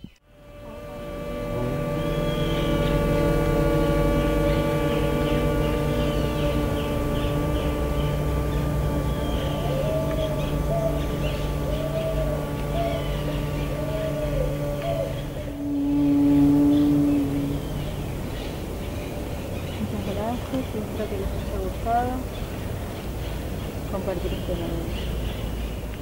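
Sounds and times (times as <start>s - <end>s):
steady drone of held tones: 0.0s - 26.0s.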